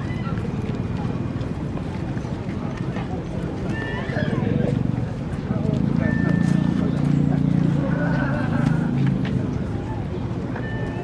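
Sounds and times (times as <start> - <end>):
indistinct chatter of shoppers: 0.0 - 11.0.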